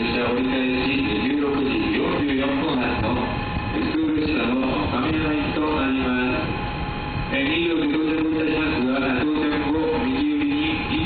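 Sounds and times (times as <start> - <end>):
electronic melody over loudspeakers: 0.0 - 11.0.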